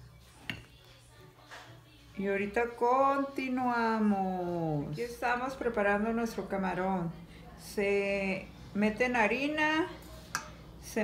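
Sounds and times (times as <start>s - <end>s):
tap on ceramic plate: 0.4s - 0.7s.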